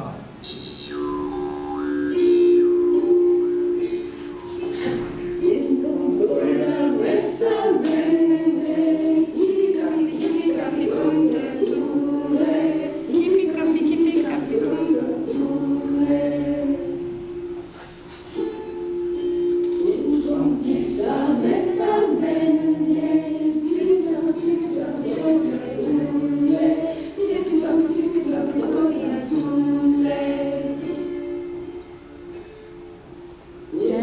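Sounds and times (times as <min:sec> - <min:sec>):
two held notes: 0:00.4 - 0:05.8
group singing unaccompanied: 0:00.4 - 0:17.5, 0:19.8 - 0:31.8
folk song with plucked strings: 0:00.9 - 0:34.0.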